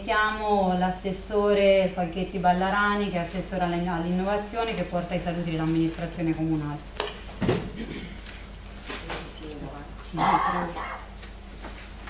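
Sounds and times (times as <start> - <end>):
woman speaking indistinctly: 0.0 - 6.9, 9.0 - 11.2.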